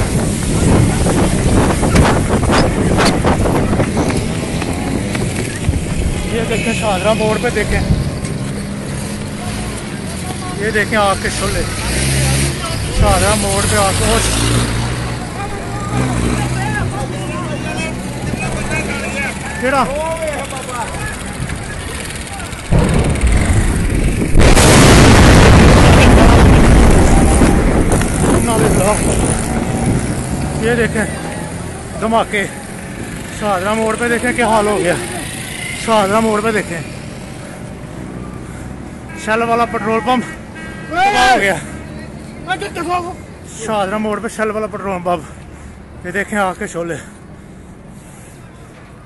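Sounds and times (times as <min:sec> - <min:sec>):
people talking and calling: 0:00.0 - 0:49.0
vehicle engine humming: 0:00.0 - 0:49.0.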